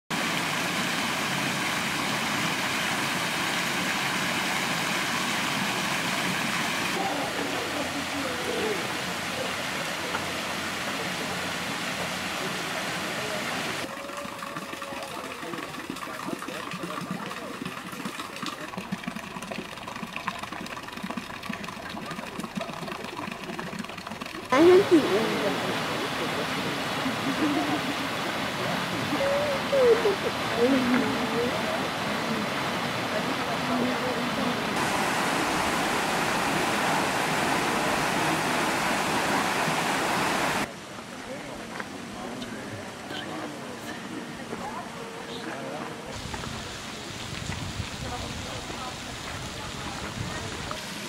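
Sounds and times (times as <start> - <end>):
fountain water splashing: 0.1 - 51.0.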